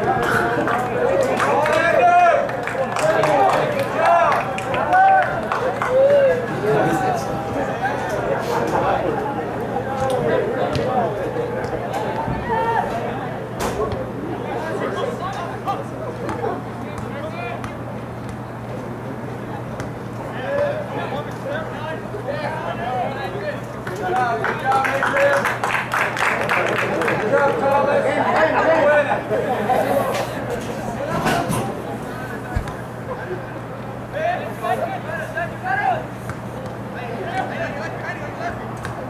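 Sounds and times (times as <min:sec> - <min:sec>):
people chattering: 0:00.0 - 0:39.0.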